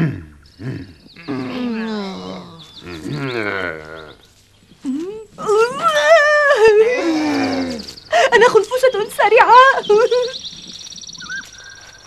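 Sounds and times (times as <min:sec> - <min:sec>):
harsh growling cries: 0:00.0 - 0:04.2
cartoon birds chirping: 0:00.2 - 0:12.0.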